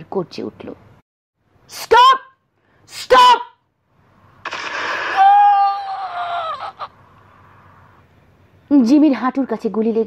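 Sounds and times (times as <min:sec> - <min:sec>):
human cry sliding down: 0:04.9 - 0:06.9.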